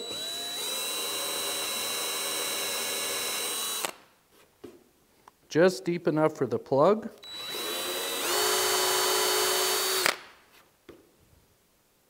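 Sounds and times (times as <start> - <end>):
cordless drill boring into wood: 0.0 - 4.0, 7.2 - 10.2.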